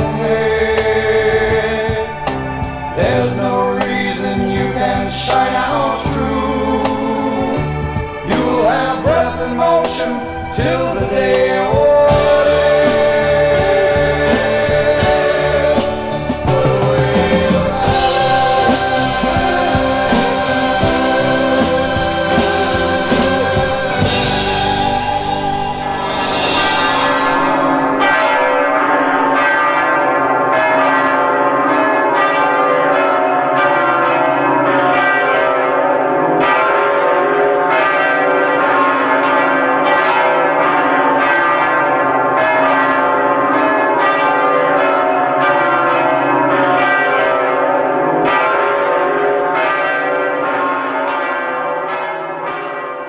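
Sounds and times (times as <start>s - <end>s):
bells ringing a peal: 0.0s - 53.0s.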